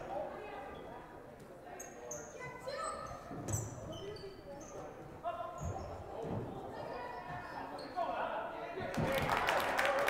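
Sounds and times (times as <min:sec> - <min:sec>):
voices echoing in hall: 0:00.0 - 0:10.0
sneaker squeaks: 0:01.8 - 0:06.2, 0:06.8 - 0:08.2.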